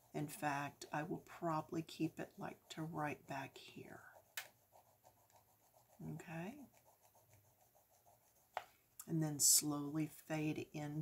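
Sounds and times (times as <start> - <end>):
pencil shading on paper: 0.0 - 8.6.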